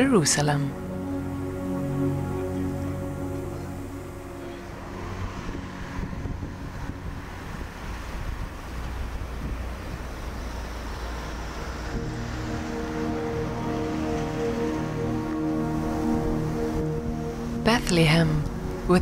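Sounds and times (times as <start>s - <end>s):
soft background music: 0.0s - 19.0s
wind on microphone: 3.6s - 12.8s.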